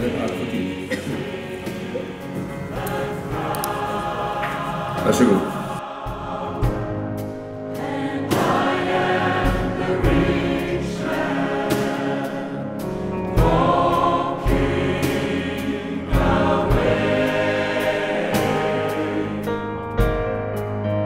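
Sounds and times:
choir singing a hymn: 0.0s - 19.8s
piano: 0.0s - 21.0s.

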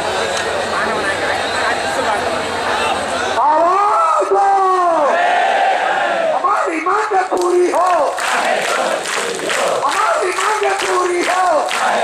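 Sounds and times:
crowd shouting: 2.6s - 6.8s, 7.5s - 12.0s
man shouting into a microphone: 3.4s - 5.2s, 6.3s - 8.2s, 9.8s - 11.8s.

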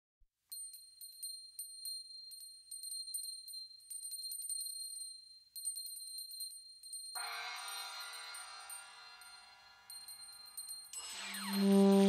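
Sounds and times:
small high-pitched bells ringing: 0.5s - 12.0s.

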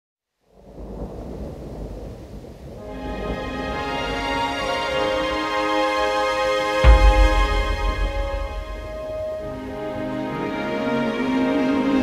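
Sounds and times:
low noisy rumble of song intro: 6.8s - 9.6s.

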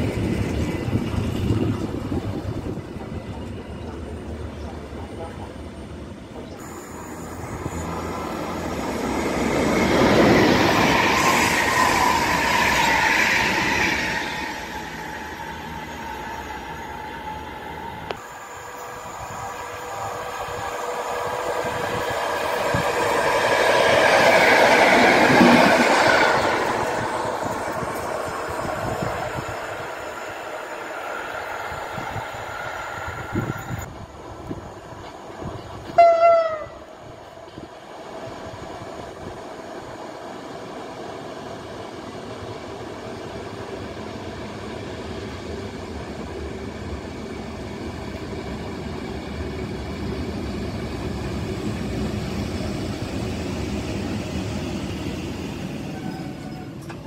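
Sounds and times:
electric trains passing on rails: 0.0s - 57.0s
train horn note: 35.9s - 36.8s.

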